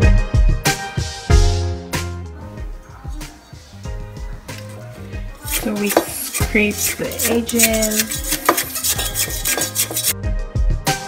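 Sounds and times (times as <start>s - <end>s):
background music: 0.0s - 11.0s
beaters scraping metal bowl: 4.6s - 10.2s
electric hand mixer: 5.4s - 10.1s.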